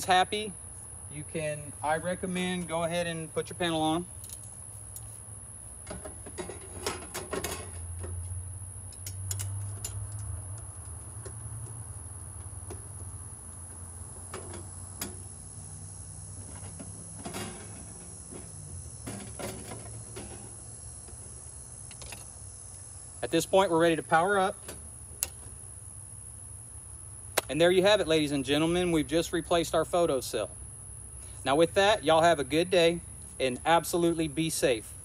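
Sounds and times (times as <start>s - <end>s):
steady low hum: 0.0s - 35.0s
metal cover clicks and scrapes: 5.9s - 8.1s, 16.4s - 20.6s.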